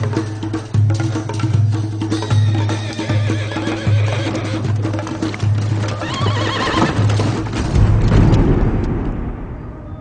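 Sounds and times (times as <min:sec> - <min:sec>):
hoofbeats: 0:00.8 - 0:08.1
horse whinnying: 0:02.3 - 0:04.9, 0:05.8 - 0:07.4.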